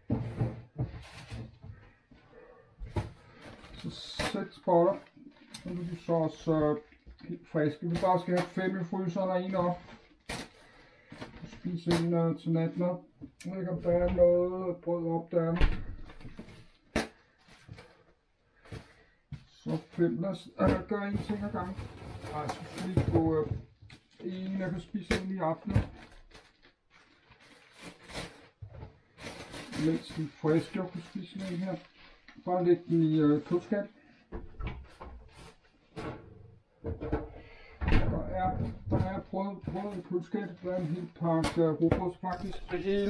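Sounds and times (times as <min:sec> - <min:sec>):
plastic bags rustling: 0:20.6 - 0:23.4, 0:24.0 - 0:33.9, 0:42.3 - 0:43.0
items knocking: 0:20.6 - 0:24.0, 0:34.4 - 0:40.1, 0:41.4 - 0:43.0.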